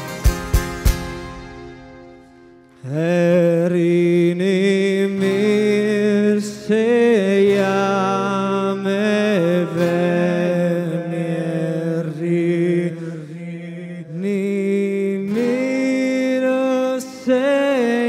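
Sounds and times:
acoustic guitar: 0.0 - 18.0.

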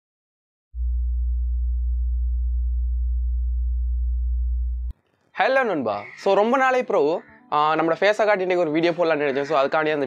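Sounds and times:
low electronic hum: 0.8 - 4.9.

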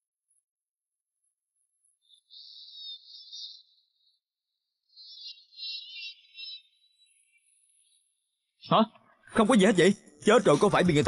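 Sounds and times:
insects trilling: 1.6 - 10.8.

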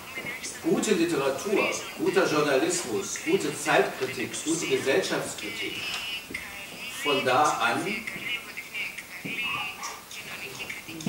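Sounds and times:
faint thin voices: 0.0 - 11.0
man talking: 0.6 - 5.9, 7.0 - 8.1.

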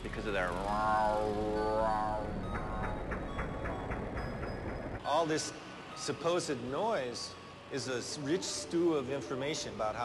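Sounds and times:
rhythmic mechanical clatter: 0.0 - 7.1.

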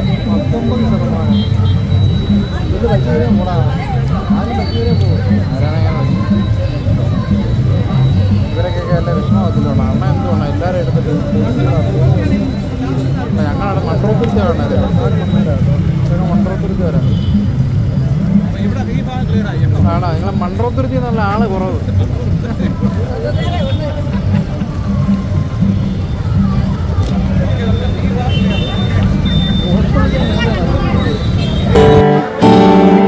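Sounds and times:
many voices: 0.0 - 33.0
music playing: 0.0 - 33.0
vehicle engines running: 0.0 - 33.0.

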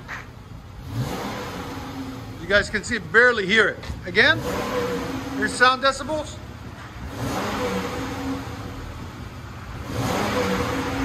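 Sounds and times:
car engine idling with rev: 0.0 - 11.0.

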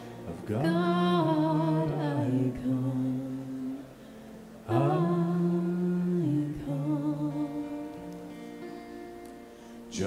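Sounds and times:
voices singing a slow hymn: 0.0 - 9.0.

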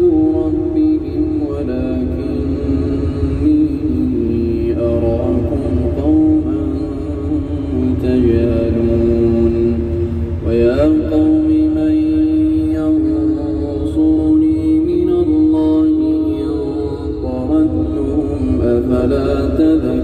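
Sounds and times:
car road and engine rumble: 0.0 - 20.0
man chanting melodically: 0.0 - 20.0.

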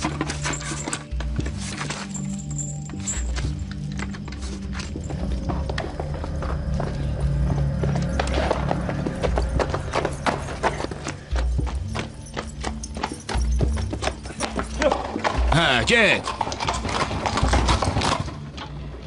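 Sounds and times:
film score with low notes: 0.0 - 19.0
rapid horse hoofbeats: 0.0 - 19.0.

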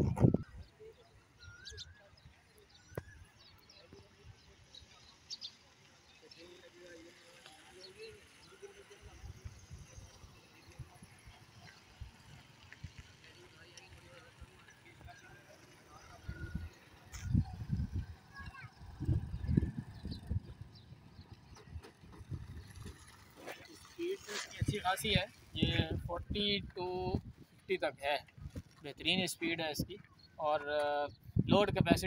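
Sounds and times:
faint distant voices: 0.0 - 26.2
low rumbles: 16.0 - 23.4.

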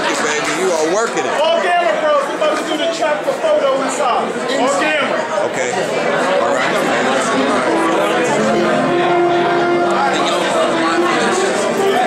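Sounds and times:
crowd chatter: 0.0 - 12.0
music with held notes: 6.8 - 12.0.

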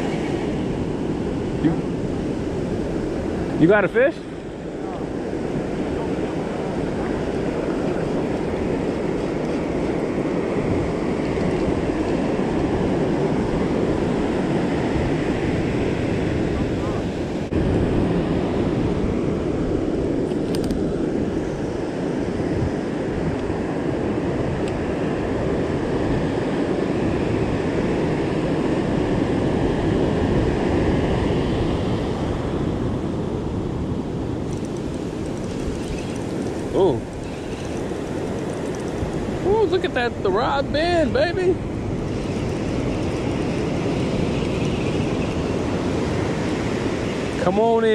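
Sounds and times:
ocean surf washing over sand: 0.0 - 47.9
wind buffeting microphone: 0.0 - 47.9.

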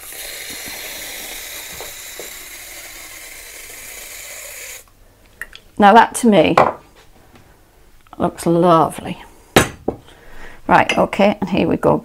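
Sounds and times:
aerosol whipped cream spraying: 0.0 - 4.9.

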